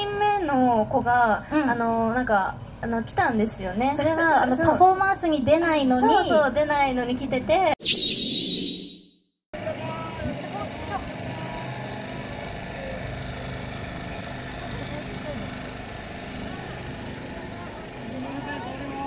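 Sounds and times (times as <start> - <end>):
distant people talking: 9.6 - 19.0.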